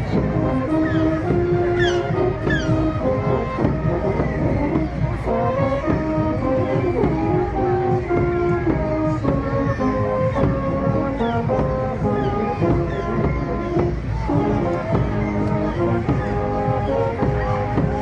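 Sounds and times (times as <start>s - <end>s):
bass drum beat: 0.0s - 18.0s
brass band playing: 0.0s - 18.0s.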